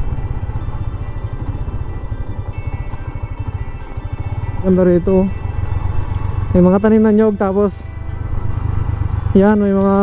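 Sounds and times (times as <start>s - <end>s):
motorcycle engine rumbling: 0.0s - 10.0s
faint background music: 0.3s - 10.0s.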